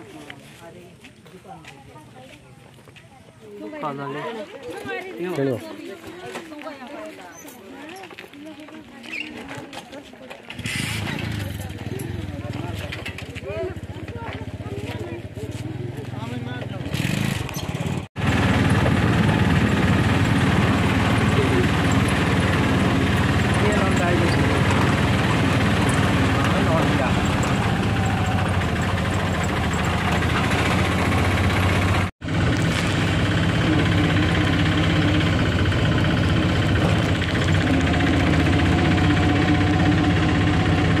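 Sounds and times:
small vehicle engine running: 0:10.5 - 0:41.0.

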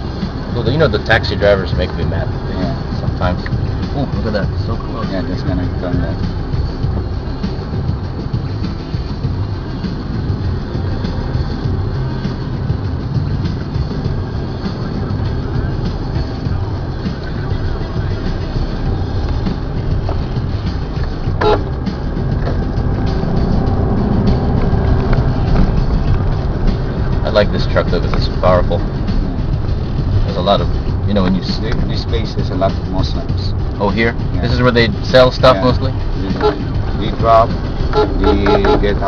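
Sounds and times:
car engine and road rumble: 0:00.0 - 0:39.0.

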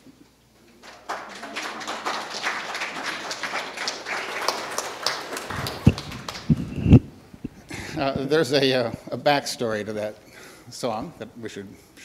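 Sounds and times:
congregation applauding: 0:00.7 - 0:08.0.

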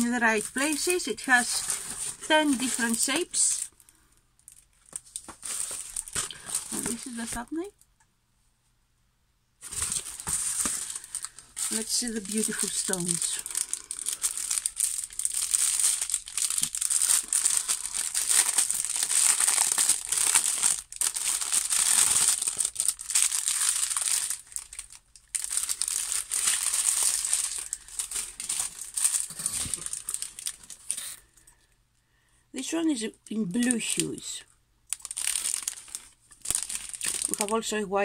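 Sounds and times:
plastic packaging crinkling: 0:00.0 - 0:07.7, 0:09.6 - 0:31.3, 0:34.9 - 0:37.8.

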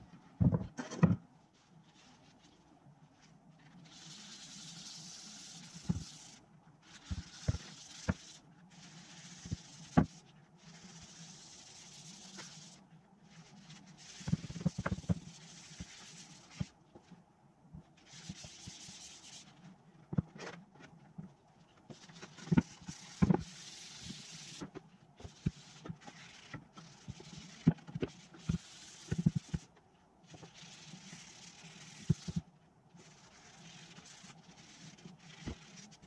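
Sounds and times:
rag wiping on wood: 0:03.7 - 0:16.7, 0:22.0 - 0:29.7, 0:33.0 - 0:36.0.

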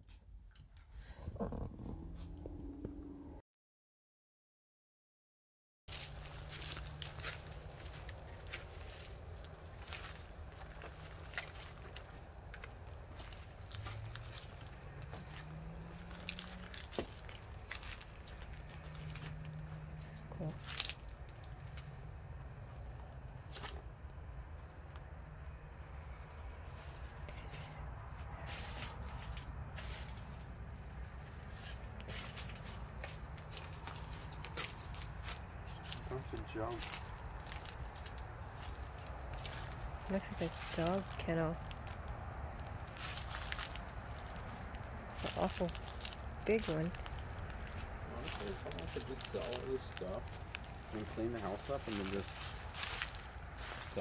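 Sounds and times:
footsteps: 0:05.9 - 0:22.0, 0:26.3 - 0:42.0, 0:42.9 - 0:54.0.

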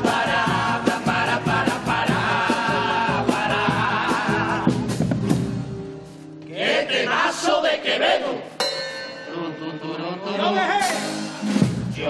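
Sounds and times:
sharp ringing hit: 0:08.6 - 0:09.6.

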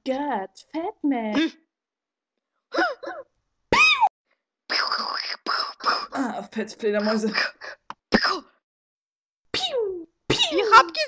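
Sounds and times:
cough-like vocal burst: 0:08.1 - 0:08.6, 0:09.6 - 0:11.0.

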